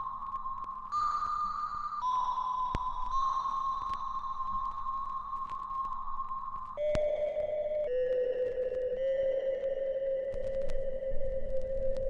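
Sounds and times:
slow music with long held notes: 0:00.0 - 0:12.0.

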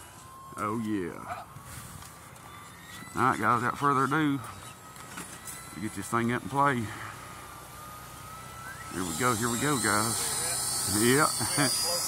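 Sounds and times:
electric ducted fan whining: 0:00.0 - 0:12.0.

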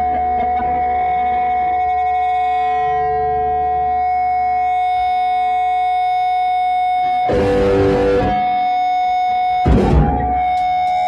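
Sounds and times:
distorted electric guitar drone: 0:00.0 - 0:08.8, 0:09.5 - 0:11.0
drums and band crash: 0:09.6 - 0:10.6.

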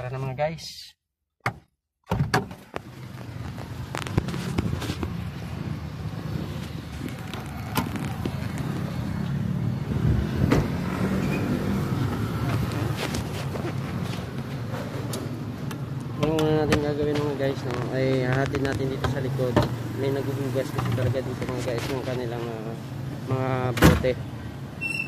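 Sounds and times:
sharp clicks and knocks: 0:01.4 - 0:05.2
running vehicle low hum: 0:02.6 - 0:25.0
car door opening: 0:06.2 - 0:08.7, 0:10.3 - 0:11.5.

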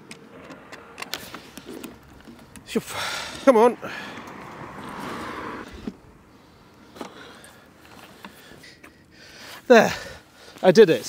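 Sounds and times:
wooden easel legs clicking and knocking: 0:00.0 - 0:02.7.

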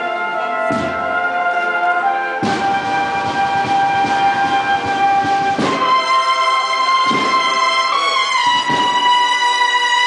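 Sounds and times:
brass band sustained chord: 0:00.0 - 0:10.0
drum strokes: 0:00.7 - 0:01.3, 0:02.4 - 0:10.0.

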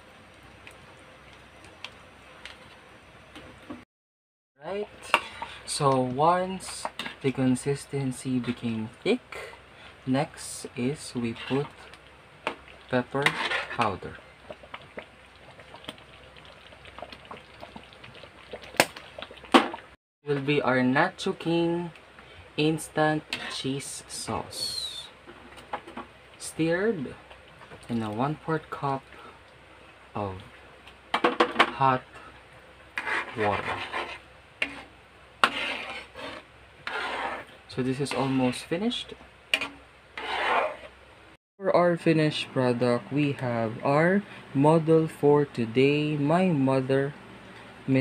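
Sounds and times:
metal spoon scraping a metal pan: 0:05.0 - 0:05.5, 0:13.2 - 0:13.9, 0:23.3 - 0:23.6, 0:33.0 - 0:38.7, 0:39.5 - 0:40.9
tomato sauce bubbling: 0:10.8 - 0:20.0.

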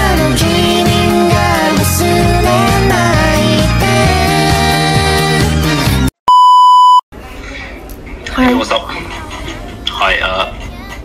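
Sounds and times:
music: 0:00.0 - 0:06.1
censor bleep: 0:06.3 - 0:07.0.

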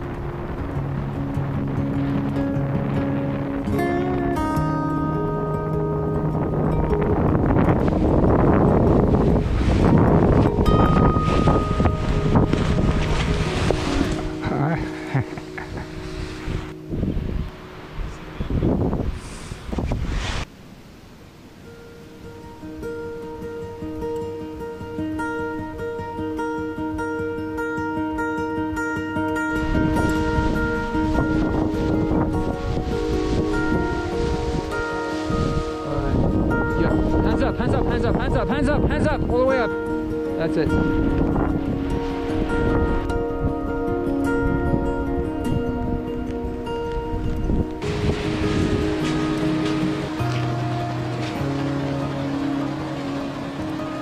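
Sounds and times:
fingerstyle acoustic guitar: 0:00.0 - 0:20.5, 0:21.5 - 0:54.0
wind buffeting microphone: 0:00.0 - 0:25.8, 0:29.2 - 0:54.0.

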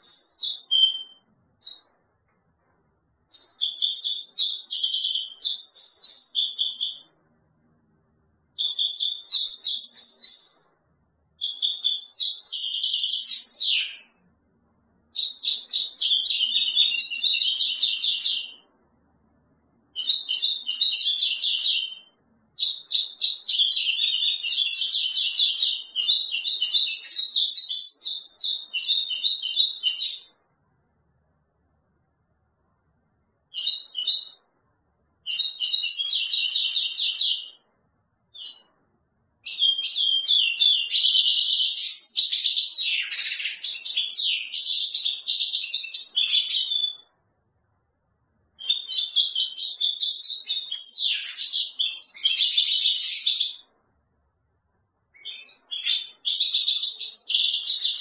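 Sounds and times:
goldfinch singing: 0:00.0 - 0:01.9, 0:03.3 - 0:07.1, 0:08.6 - 0:10.7, 0:11.4 - 0:14.2, 0:15.1 - 0:18.6, 0:20.0 - 0:30.3, 0:33.5 - 0:34.4, 0:35.3 - 0:37.6, 0:38.4 - 0:38.6, 0:39.4 - 0:47.1, 0:48.6 - 0:53.6, 0:55.2 - 0:58.0.

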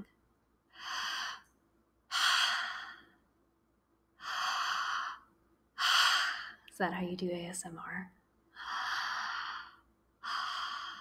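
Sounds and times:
woman breathing close to microphone: 0:00.7 - 0:03.2, 0:04.2 - 0:06.7, 0:08.5 - 0:11.0.

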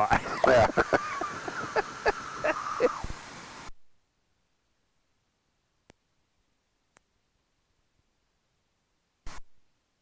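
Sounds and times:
person laughing: 0:00.0 - 0:03.1
faint steady hum: 0:00.0 - 0:10.0.

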